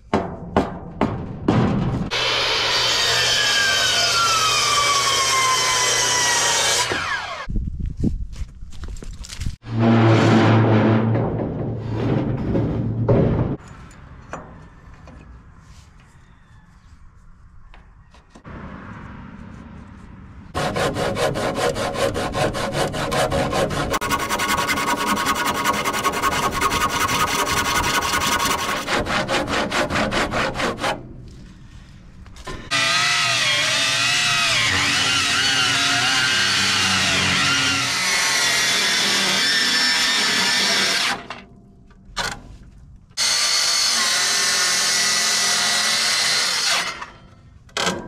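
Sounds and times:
circular saw cutting: 2.1 - 7.5, 20.5 - 31.0, 32.6 - 41.4, 43.2 - 47.2
handsaw cutting wood: 2.1 - 7.5, 20.6 - 31.0, 32.7 - 41.3.

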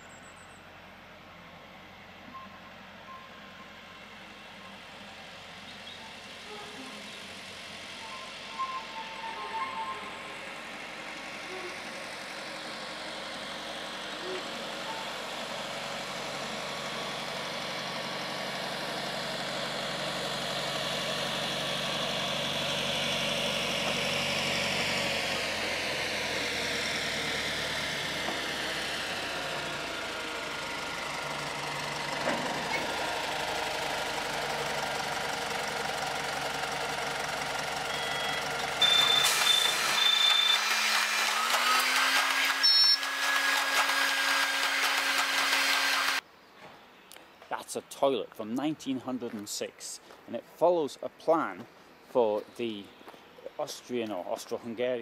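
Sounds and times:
diesel locomotive engine running: 0.0 - 46.3
high-pitched squealing: 8.0 - 10.4, 38.8 - 46.2.

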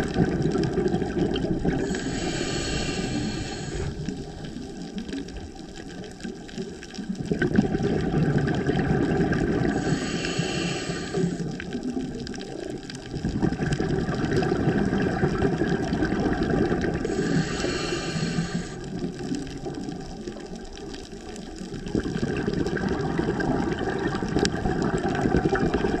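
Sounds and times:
bubbling exhalations: 0.0 - 20.8, 21.6 - 26.0
regulator hissing inhale: 1.8 - 4.5, 9.6 - 11.7, 17.0 - 19.2.

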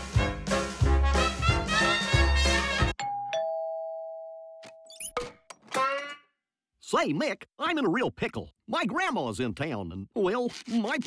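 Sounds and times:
two-note doorbell chime: 3.0 - 4.9.

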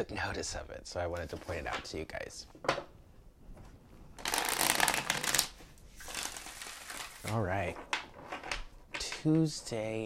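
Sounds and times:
cards being riffle shuffled: 4.2 - 7.4.

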